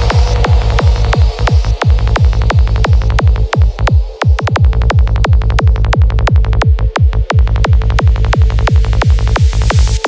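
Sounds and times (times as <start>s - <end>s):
electronic music heavy bass hits: 0.0s - 10.0s.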